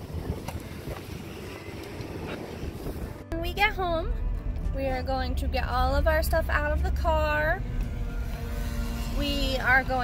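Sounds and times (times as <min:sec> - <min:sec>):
wind rumble on microphone: 0:00.0 - 0:03.3.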